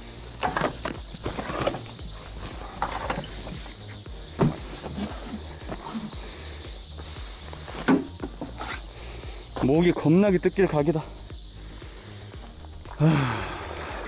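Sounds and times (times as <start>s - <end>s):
quiet background music: 0.0s - 14.0s
fishing gear knocks and rustles: 0.4s - 6.1s.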